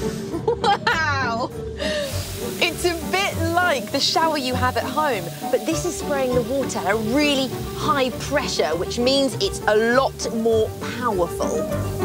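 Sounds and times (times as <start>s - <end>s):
background music: 0.0s - 12.0s
woman laughing: 0.4s - 2.1s
woman talking: 0.7s - 1.5s, 2.6s - 11.7s.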